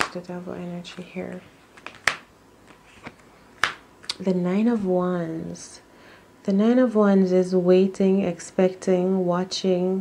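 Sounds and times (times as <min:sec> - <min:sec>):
faint card rustles: 0:00.9 - 0:04.9
card snapping down: 0:01.8 - 0:04.2.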